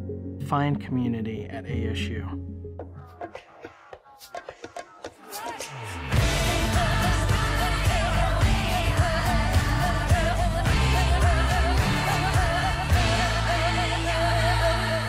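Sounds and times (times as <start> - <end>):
rhythmic musical accompaniment: 0.0 - 15.0
person singing with vibrato: 5.2 - 15.0.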